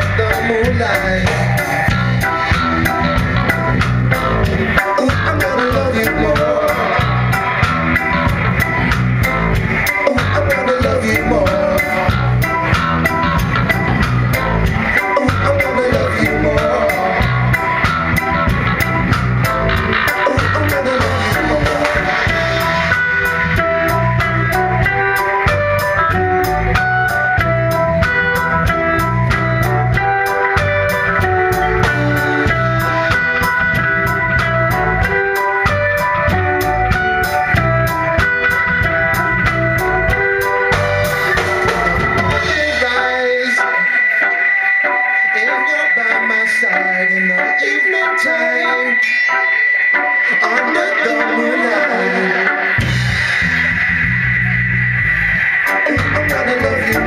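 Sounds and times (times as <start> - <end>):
drum kit with hi-hat beat: 0.0 - 44.4, 50.0 - 57.0
bass guitar: 0.0 - 57.0
electric guitar: 0.0 - 57.0
keyboard: 0.0 - 57.0.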